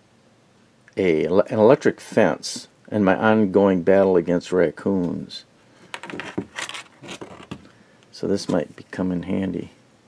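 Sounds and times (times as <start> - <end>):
scrapes and rubs on workbench: 6.0 - 7.6.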